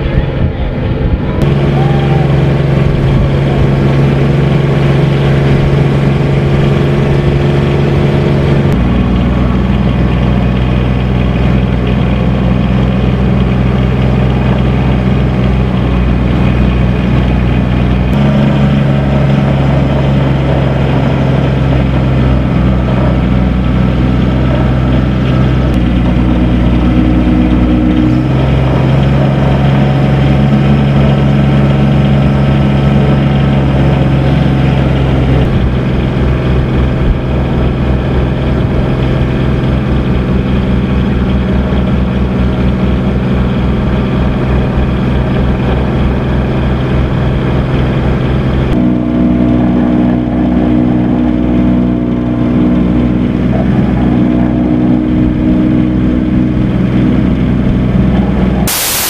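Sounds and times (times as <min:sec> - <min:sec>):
engine idling: 0:00.0 - 0:59.0.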